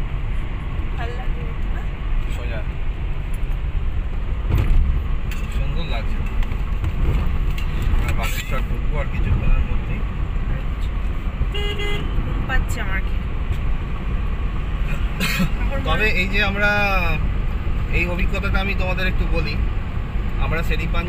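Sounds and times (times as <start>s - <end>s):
car driving on highway: 0.0s - 21.0s
vehicle horn toot: 11.5s - 12.2s.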